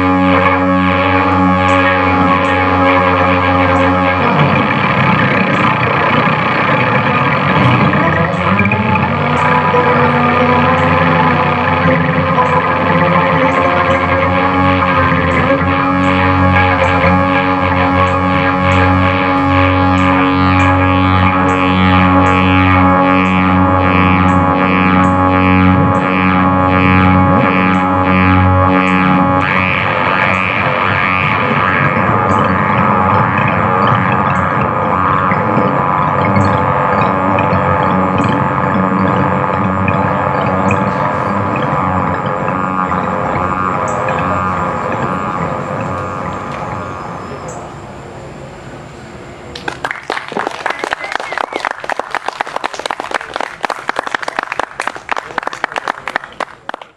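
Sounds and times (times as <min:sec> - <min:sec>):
electronic synthesizer music: 0:00.0 - 0:49.2.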